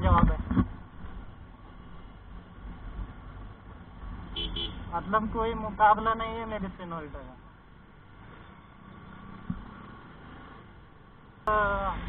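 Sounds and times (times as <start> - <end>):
motorcycle horn toots: 4.4 - 4.8.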